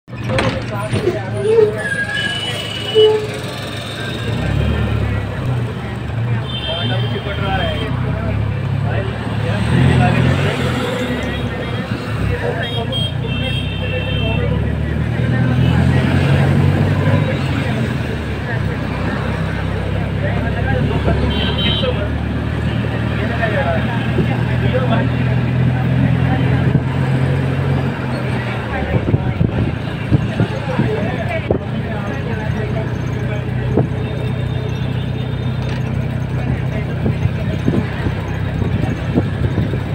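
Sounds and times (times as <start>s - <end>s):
vehicle road and engine rumble: 0.0s - 39.9s
traffic horns tooting: 1.0s - 4.9s, 6.3s - 8.3s, 9.7s - 14.8s, 20.7s - 22.9s, 34.0s - 36.2s.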